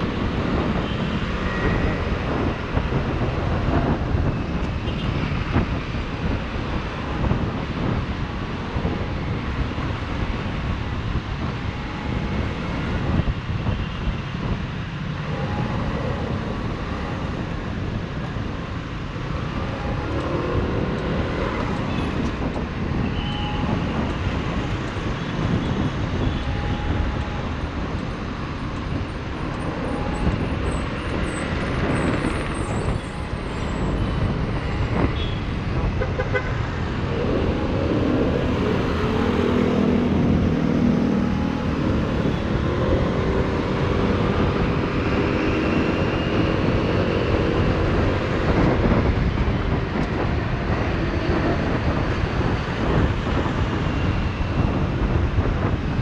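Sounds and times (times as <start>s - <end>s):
road and wind noise: 0.0s - 56.0s.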